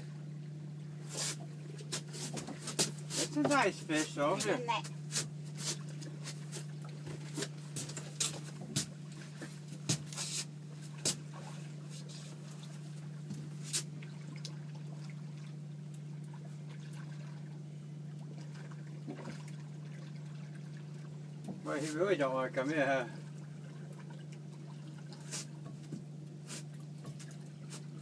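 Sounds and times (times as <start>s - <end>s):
outboard motor humming: 0.0s - 28.0s.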